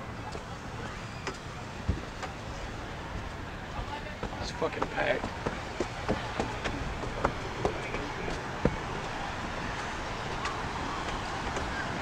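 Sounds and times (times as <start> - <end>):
distant voices: 0.0 - 12.0
wind: 0.0 - 12.0
footsteps on wooden boardwalk: 3.1 - 11.9.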